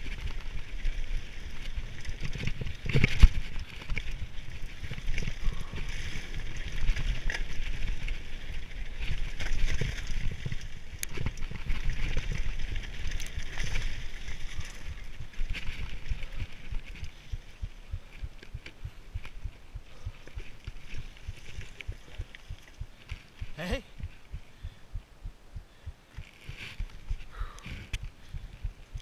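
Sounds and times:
bike tyres crunching over gravel: 0.0 - 24.6
wind buffeting microphone: 1.2 - 29.0.

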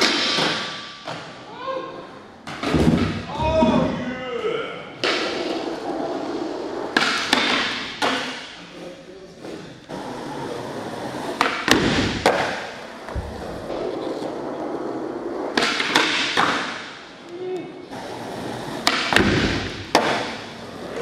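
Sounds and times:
skateboard clacks: 0.0 - 1.2, 11.1 - 14.3, 15.2 - 16.9, 18.1 - 21.0
skateboard wheels rolling on concrete: 5.0 - 21.0
skateboard grinding along ledge: 5.1 - 8.4, 9.5 - 16.7, 17.9 - 21.0.

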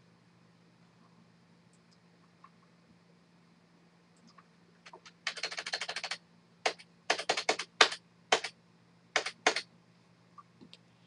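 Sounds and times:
keyboard keys tapping: 4.2 - 8.5, 9.2 - 9.6.

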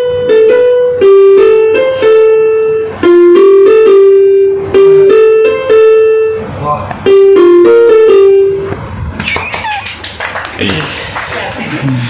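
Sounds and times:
high-pitched sliding cries: 9.2 - 10.0
sharp slaps or claps: 9.2 - 11.6.

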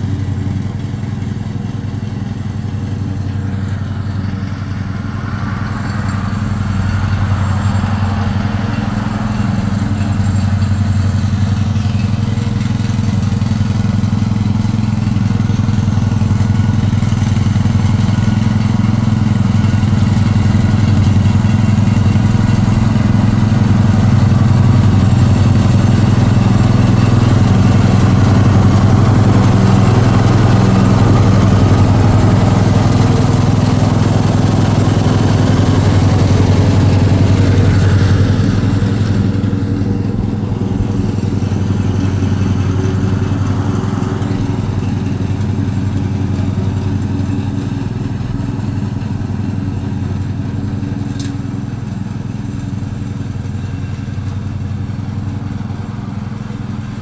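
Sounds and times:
lawn mower engine running: 0.0 - 57.0.

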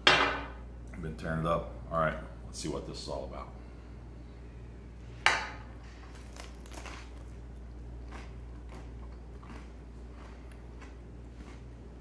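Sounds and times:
low steady hum: 0.0 - 12.0
faint crunching of chewing: 5.9 - 12.0
loud crunch of biting toast: 6.1 - 11.9.

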